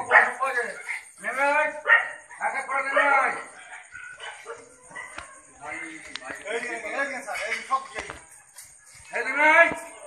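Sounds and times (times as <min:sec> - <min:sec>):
quiet broken voices: 0:00.0 - 0:10.0.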